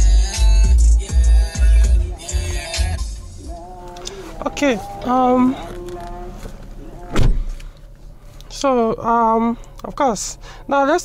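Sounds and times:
music with heavy bass beat: 0.0 - 4.7.

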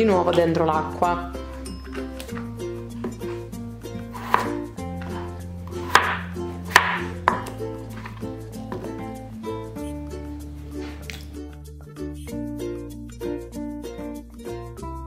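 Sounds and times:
background music: 0.0 - 15.0
knife chopping on plastic board: 4.1 - 9.1.

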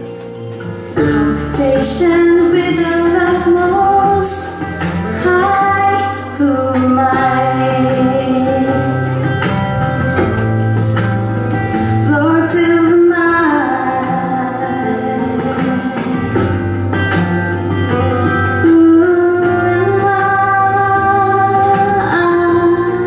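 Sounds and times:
instrumental accompaniment: 0.0 - 23.0
woman singing into microphone: 1.0 - 9.6, 11.9 - 23.0.

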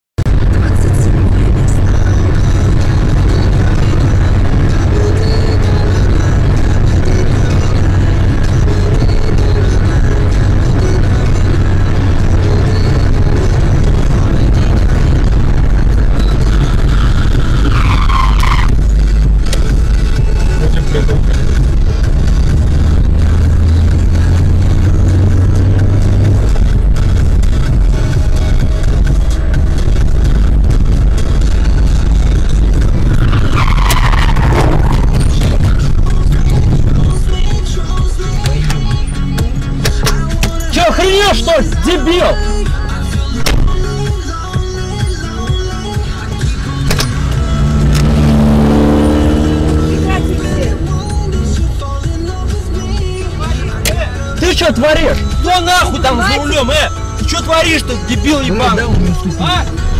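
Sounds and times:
car engine and road noise: 0.2 - 59.9
music playing: 0.2 - 59.9.

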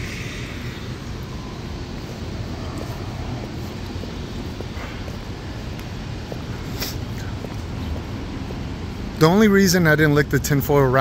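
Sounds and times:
city street traffic rumble: 0.0 - 11.0.

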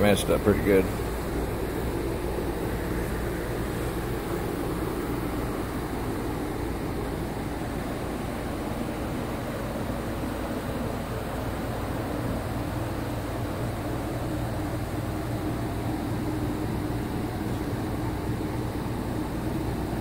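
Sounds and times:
ventilation fan humming: 0.0 - 20.0.

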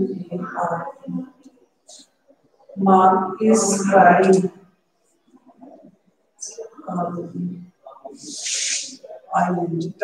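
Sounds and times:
long hiss: 8.2 - 9.0.

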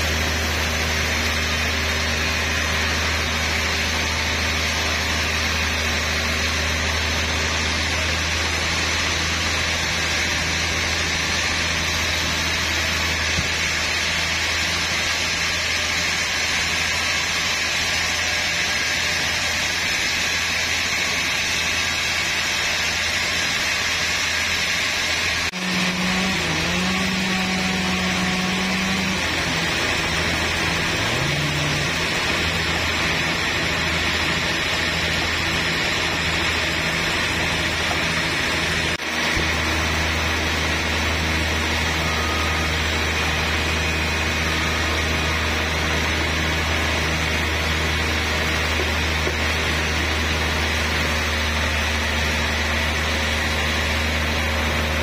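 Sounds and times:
band saw cutting log: 0.0 - 55.0
deep machine hum: 0.0 - 55.0.

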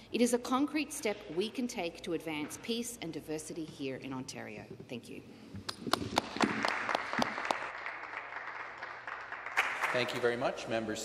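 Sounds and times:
group clapping: 5.6 - 10.6.

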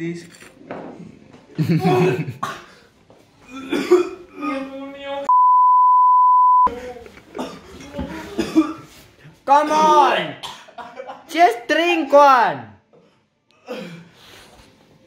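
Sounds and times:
laughter: 1.6 - 2.4
person coughing: 1.8 - 2.8, 3.5 - 4.7, 7.3 - 8.9, 10.4 - 11.3, 13.6 - 14.1
censor bleep: 5.3 - 6.7.

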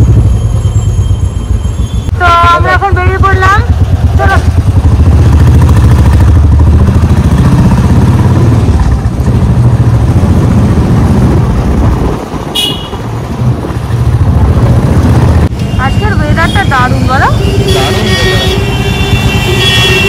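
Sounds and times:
motorcycle engine rumble: 0.0 - 20.0
wind buffeting microphone: 8.3 - 15.5
high-pitched horn toot: 15.6 - 20.0.

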